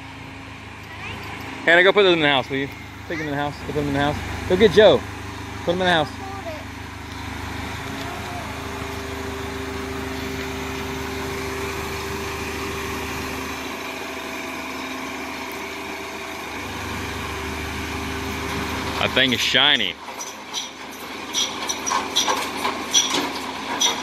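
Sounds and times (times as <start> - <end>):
car engine humming: 0.0 - 24.0.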